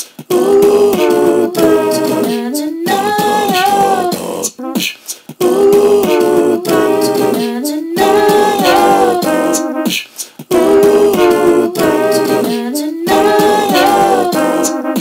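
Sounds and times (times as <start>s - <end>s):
wordless a cappella singing: 0.0s - 15.0s.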